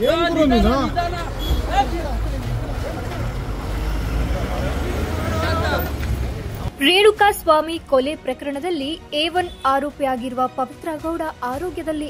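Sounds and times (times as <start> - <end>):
crowd shouting: 4.9 - 6.0.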